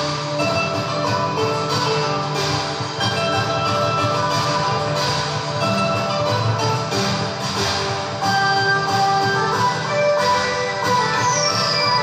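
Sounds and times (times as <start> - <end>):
music from tv speakers: 0.0 - 12.0.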